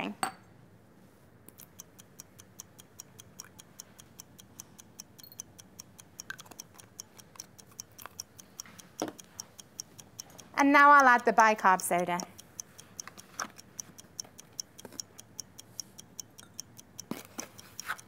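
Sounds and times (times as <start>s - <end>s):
faint high-pitched ticking: 1.5s - 18.0s.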